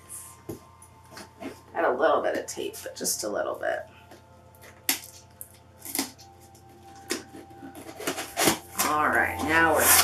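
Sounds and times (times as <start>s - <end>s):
cardboard and tape ripping: 4.8s - 10.0s.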